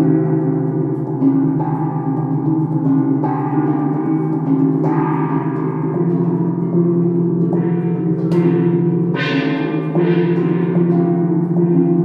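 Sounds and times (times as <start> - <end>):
gongs struck with mallets: 0.0 - 12.0.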